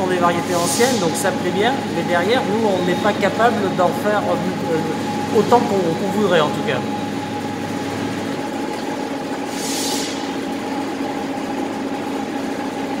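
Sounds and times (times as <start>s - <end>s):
machinery humming: 0.0s - 13.0s.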